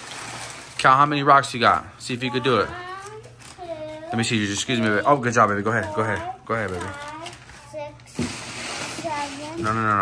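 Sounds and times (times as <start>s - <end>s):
packing paper crinkling: 0.0s - 10.0s.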